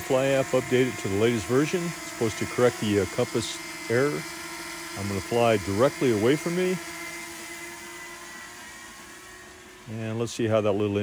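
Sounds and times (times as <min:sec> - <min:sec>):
drone propellers whining: 0:00.0 - 0:11.0.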